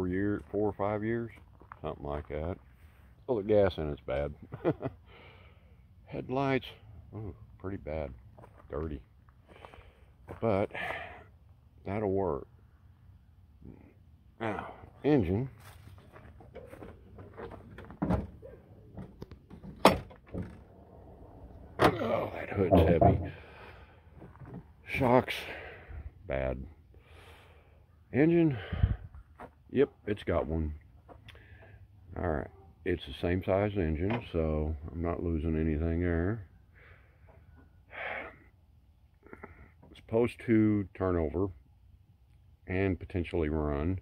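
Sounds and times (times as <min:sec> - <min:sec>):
hood latch clicks and clunks: 0:16.5 - 0:23.4.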